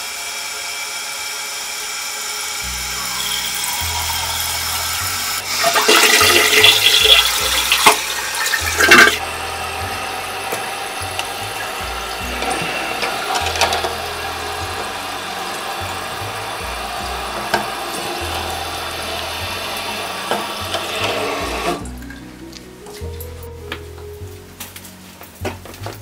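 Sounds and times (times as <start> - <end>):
toilet tank refilling hiss: 0.0 - 22.0.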